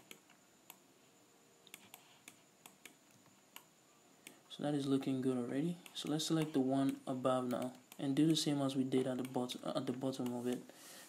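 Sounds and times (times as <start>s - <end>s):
computer mouse clicks: 0.0s - 0.8s, 1.6s - 5.2s, 5.8s - 10.6s.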